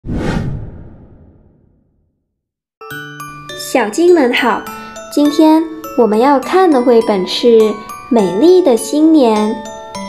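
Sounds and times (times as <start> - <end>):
whoosh sound effect: 0.0 - 2.0.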